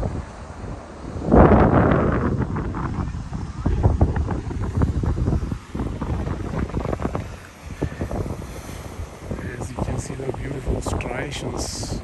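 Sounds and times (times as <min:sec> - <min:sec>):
surf on rocky shore: 0:00.0 - 0:12.0
wind buffeting microphone: 0:00.0 - 0:12.0.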